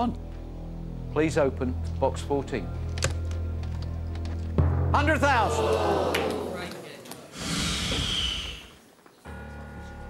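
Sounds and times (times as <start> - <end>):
breathy sigh: 7.3 - 8.8.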